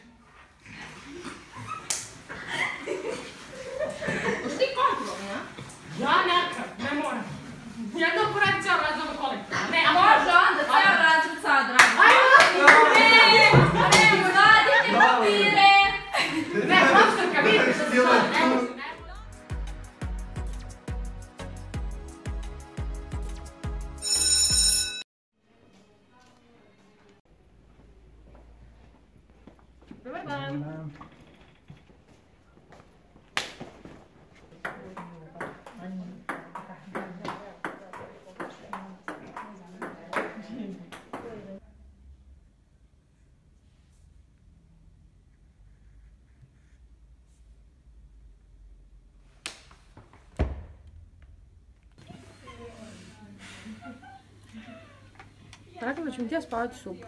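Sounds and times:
young woman's voice: 55.6s - 57.0s.

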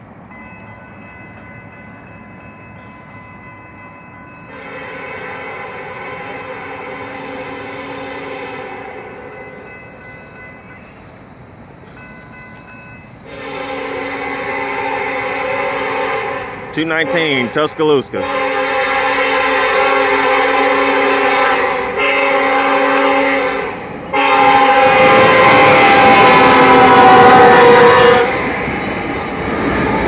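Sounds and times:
crossing signal bell ringing: 0.2s - 7.4s, 8.7s - 13.7s
locomotive air horn blasts: 4.5s - 9.3s, 13.2s - 28.6s.

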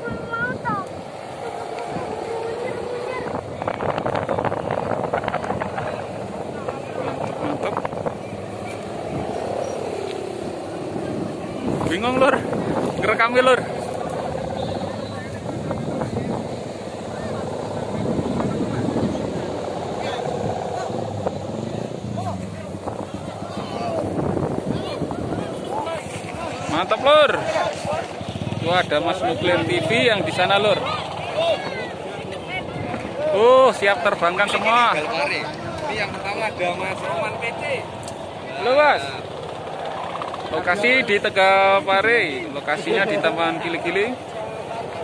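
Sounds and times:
crowd voices: 0.0s - 45.0s
kite hummer droning in wind: 0.0s - 45.0s.

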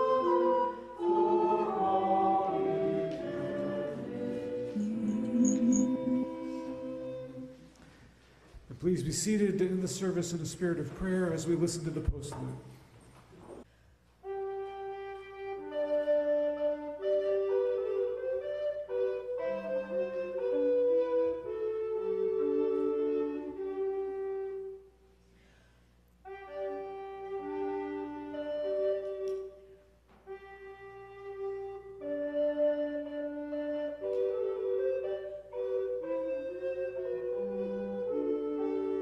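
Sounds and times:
recorders playing in harmony: 0.0s - 7.9s, 14.2s - 24.9s, 26.2s - 39.0s.

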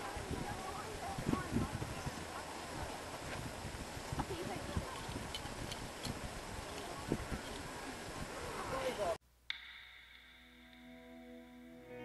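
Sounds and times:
distant people talking: 0.0s - 3.4s.

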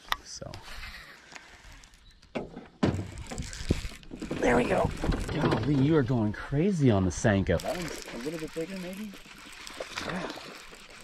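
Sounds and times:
dull thump: 2.3s - 3.2s.

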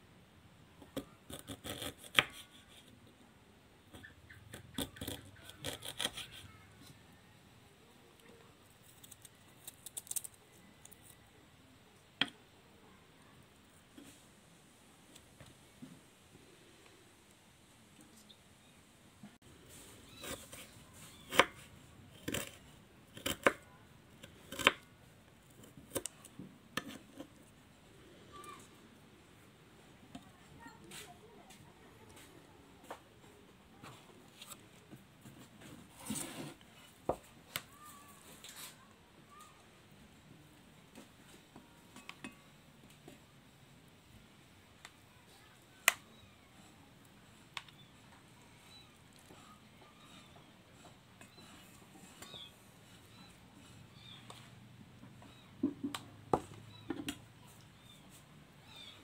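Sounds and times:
scraping rustle: 35.3s - 37.0s.

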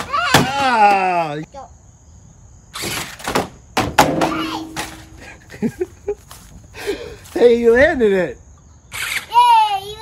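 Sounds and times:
toy truck landing thuds: 2.8s - 5.2s.

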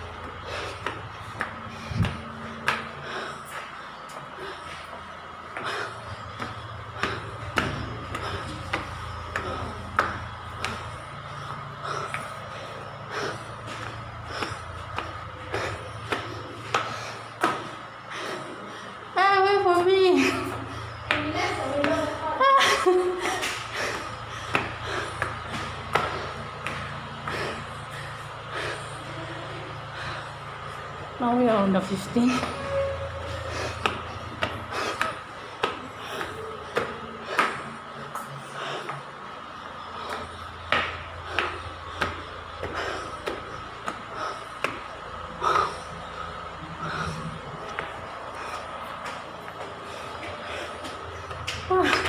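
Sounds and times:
footsteps on concrete stairs: 0.0s - 52.0s
low hum: 0.0s - 52.0s.

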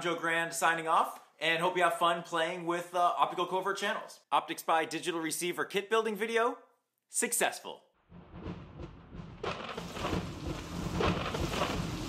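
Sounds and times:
rolling thunder: 8.1s - 12.0s
rain hiss: 9.5s - 12.0s.

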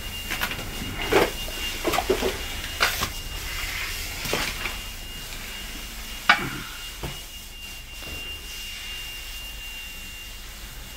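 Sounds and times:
smoke alarm tone: 0.0s - 10.9s.

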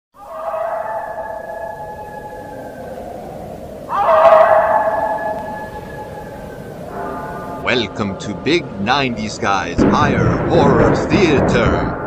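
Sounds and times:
long shrill eerie cries: 0.2s - 8.0s.

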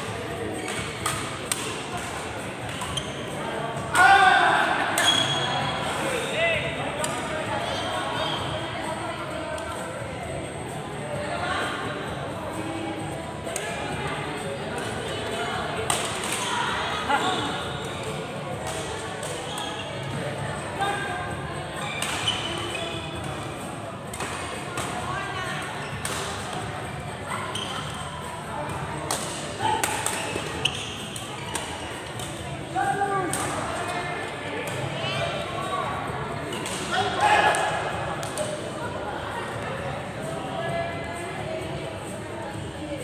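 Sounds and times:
echoing chatter of voices: 0.0s - 43.0s.

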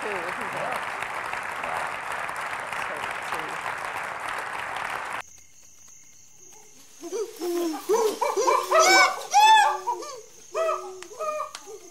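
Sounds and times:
high insect drone: 0.0s - 11.9s
chimpanzee pant-hoot calls: 6.5s - 11.9s.

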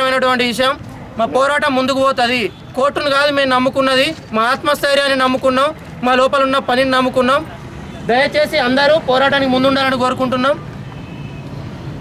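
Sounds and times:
man speaking: 0.0s - 10.7s
low hum of road traffic: 0.0s - 12.0s.

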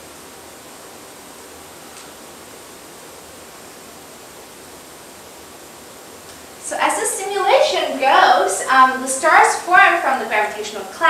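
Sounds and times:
room tone hiss: 0.0s - 11.0s
faint click: 1.9s - 2.2s.

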